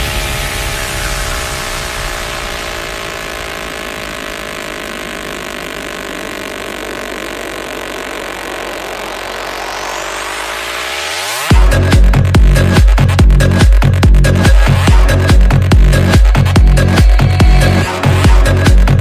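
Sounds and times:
buzzy synth tone: 0:00.0 - 0:19.0.

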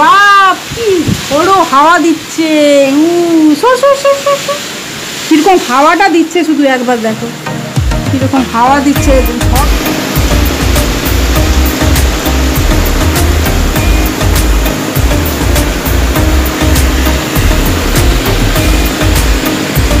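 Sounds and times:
heavy rain pouring: 0:00.0 - 0:20.0
wind buffeting microphone: 0:00.6 - 0:01.8.

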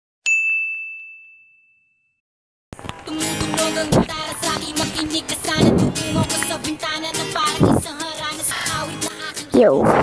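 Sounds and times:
high bell ding: 0:00.3 - 0:02.2.

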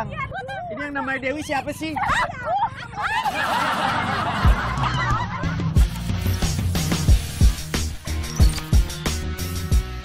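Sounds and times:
young women squealing and laughing: 0:00.0 - 0:05.5
music with deep thumping beat: 0:04.4 - 0:10.0.

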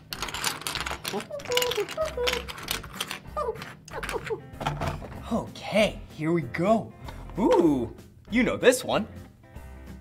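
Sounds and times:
plastic tiles clicking on tabletop: 0:00.0 - 0:04.3.

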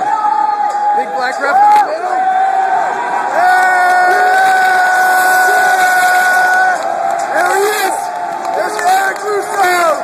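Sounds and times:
crowd noise in a gym: 0:00.0 - 0:10.0.

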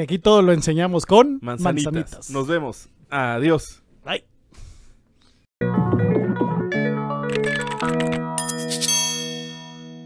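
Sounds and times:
ringing chime strikes: 0:08.4 - 0:10.0.

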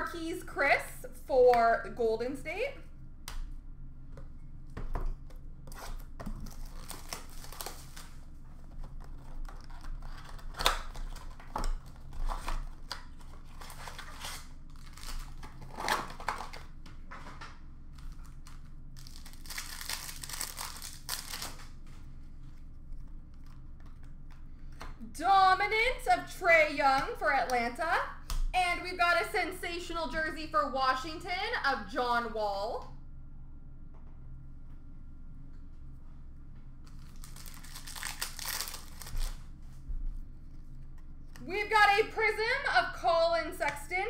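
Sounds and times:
cardboard and cards rustling: 0:04.2 - 0:24.9
plastic wrapping crinkling and tearing: 0:05.7 - 0:24.1, 0:36.8 - 0:39.6.

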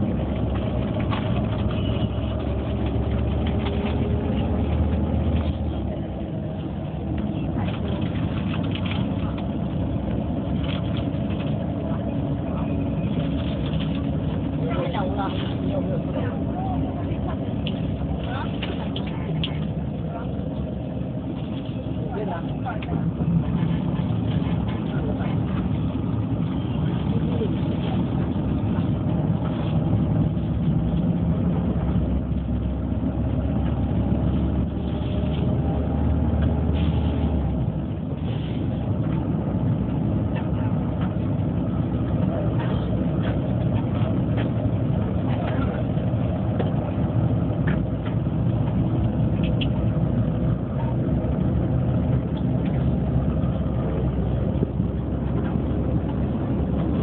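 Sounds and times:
bus engine drone: 0:00.0 - 0:57.0
road rumble: 0:00.0 - 0:57.0.

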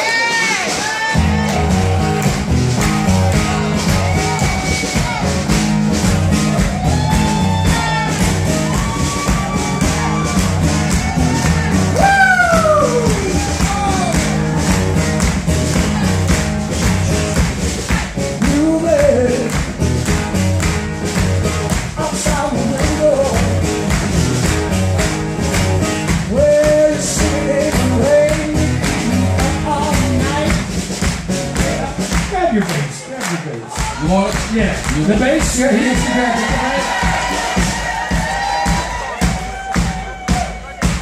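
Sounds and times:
acoustic guitar: 0:01.2 - 0:32.4
hand claps: 0:01.4 - 0:41.0
person singing: 0:11.4 - 0:14.8, 0:18.4 - 0:19.7, 0:21.9 - 0:23.9, 0:26.2 - 0:30.7, 0:35.1 - 0:37.5.

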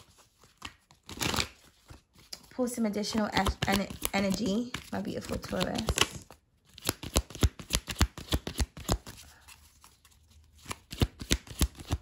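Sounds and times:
cards being shuffled: 0:00.0 - 0:12.0.

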